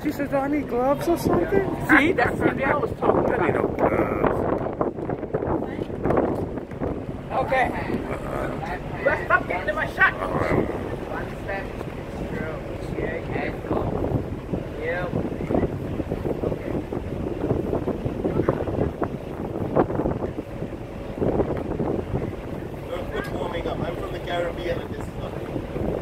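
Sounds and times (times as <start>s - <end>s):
voices nearby: 0.0s - 26.0s
wind buffeting microphone: 0.0s - 26.0s.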